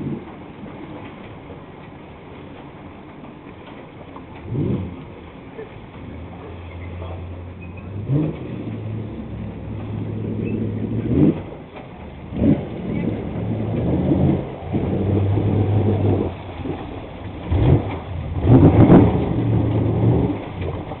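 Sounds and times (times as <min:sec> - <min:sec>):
watercraft engine humming: 0:00.0 - 0:21.0.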